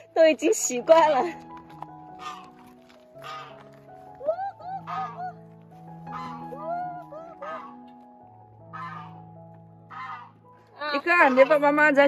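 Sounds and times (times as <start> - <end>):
soft background music: 0.0 - 12.0
geese honking: 2.0 - 12.0.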